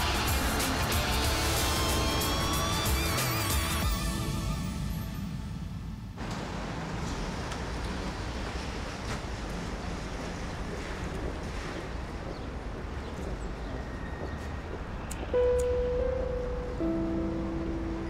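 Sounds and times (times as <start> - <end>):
distant street noise: 6.2 - 18.0
held musical note: 15.4 - 18.0.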